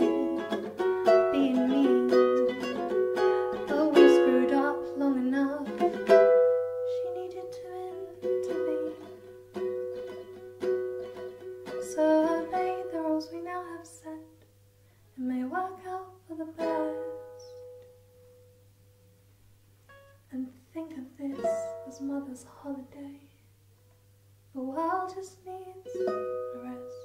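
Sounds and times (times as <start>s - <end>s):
woman singing: 0.0s - 6.2s, 6.8s - 9.2s, 11.7s - 14.4s, 15.2s - 17.1s, 20.3s - 23.4s, 24.6s - 27.0s
ukulele strumming: 0.0s - 13.8s, 16.5s - 18.5s, 21.3s - 22.1s, 25.8s - 27.0s.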